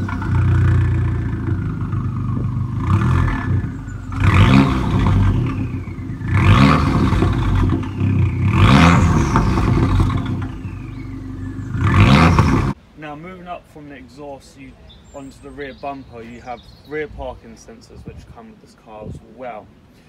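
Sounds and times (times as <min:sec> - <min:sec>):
car engine idling and revving: 0:00.0 - 0:12.8.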